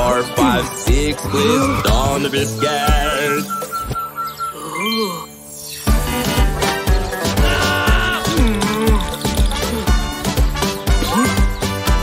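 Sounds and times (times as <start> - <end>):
backing music with beat: 0.0 - 4.2, 5.9 - 12.0
cartoon twinkling chime: 3.2 - 6.4.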